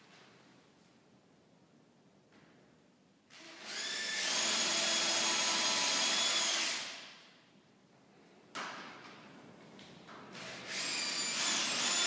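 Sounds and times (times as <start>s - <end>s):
power tool motor whining: 10.4s - 12.0s.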